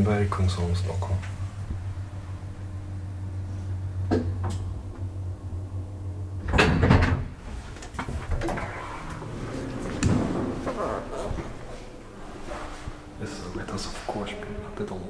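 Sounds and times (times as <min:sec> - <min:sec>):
elevator drive hum: 0:00.0 - 0:15.0
door clunk and rattle: 0:06.4 - 0:11.7.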